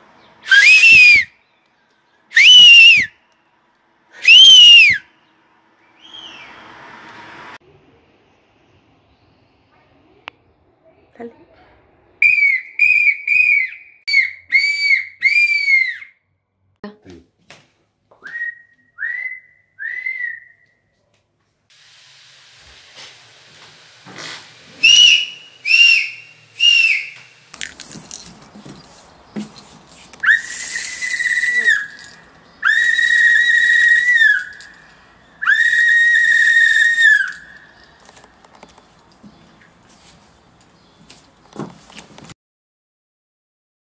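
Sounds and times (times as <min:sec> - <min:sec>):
hand-held whistle blasts: 0:00.5 - 0:01.3, 0:02.3 - 0:03.1, 0:04.2 - 0:05.1, 0:12.2 - 0:16.2, 0:18.2 - 0:20.8, 0:24.8 - 0:27.3, 0:30.2 - 0:34.8, 0:35.4 - 0:37.9.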